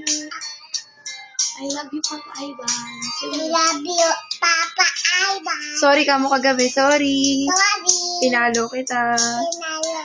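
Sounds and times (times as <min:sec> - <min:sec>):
girl singing: 0:00.0 - 0:00.5, 0:01.6 - 0:05.8, 0:07.3 - 0:08.6, 0:09.2 - 0:10.0.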